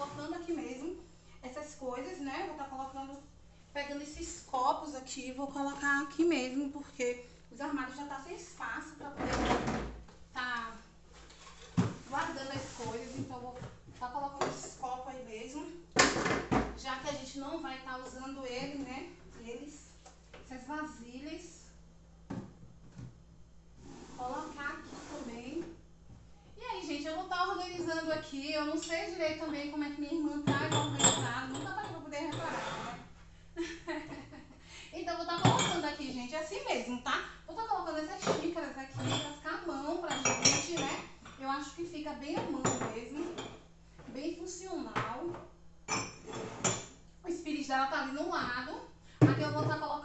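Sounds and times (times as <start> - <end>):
cups and dishes clinking: 30.4 - 33.0, 35.3 - 36.0, 38.2 - 41.4, 42.4 - 43.7, 45.9 - 47.0.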